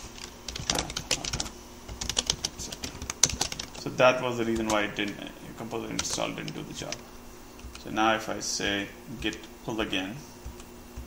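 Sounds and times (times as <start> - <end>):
typing on computer keyboard: 0.2 - 3.9, 4.5 - 5.2, 5.8 - 7.0.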